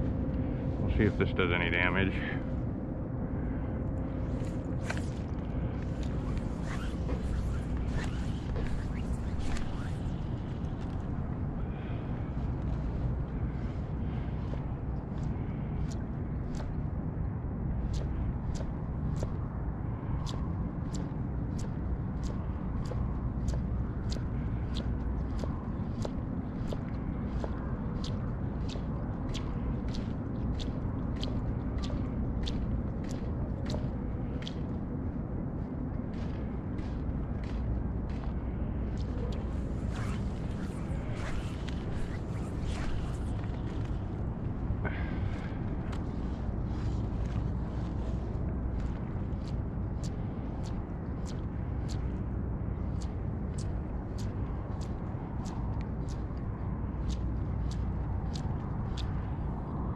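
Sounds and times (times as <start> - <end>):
low steady rumble: 0.0 - 59.9.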